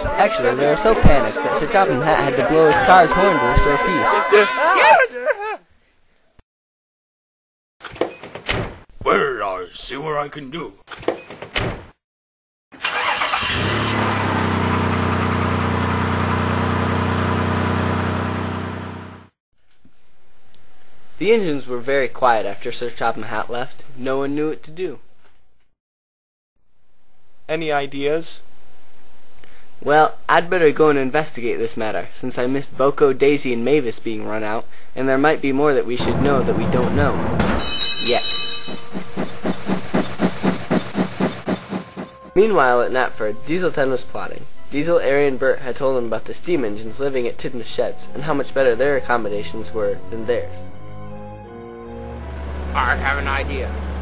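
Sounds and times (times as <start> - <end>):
high ringing tone: 2.8 - 4.8, 37.5 - 39.1
car engine running: 13.6 - 19.3, 38.8 - 42.3, 52.2 - 54.0
steam locomotive chuffing: 36.0 - 42.4.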